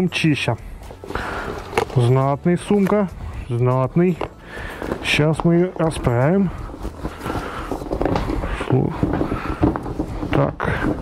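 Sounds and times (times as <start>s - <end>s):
waterproof fabric rustling and crackling: 4.7s - 11.0s.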